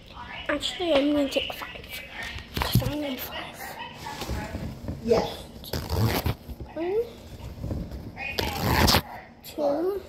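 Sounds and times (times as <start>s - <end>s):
paper towel tearing: 5.6s - 6.5s, 8.4s - 9.1s.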